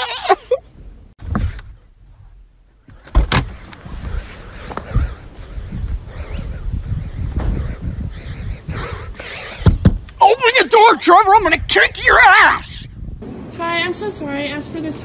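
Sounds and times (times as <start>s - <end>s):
car door thumping open: 2.9s - 3.5s
loud thumps: 2.9s - 3.6s, 9.6s - 10.2s.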